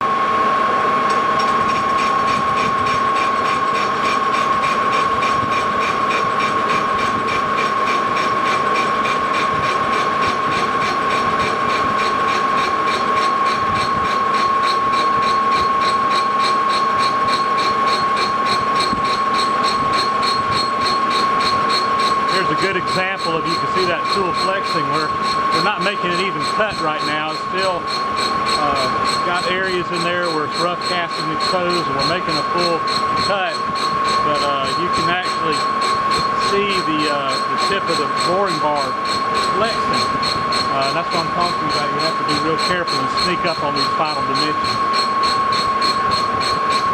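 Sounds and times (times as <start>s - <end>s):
lathe boring bar ringing: 1.0s - 46.9s.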